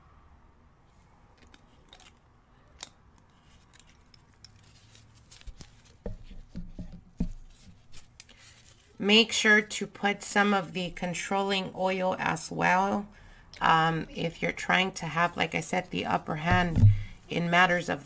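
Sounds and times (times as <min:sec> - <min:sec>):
dull knocks: 0:16.5 - 0:17.2.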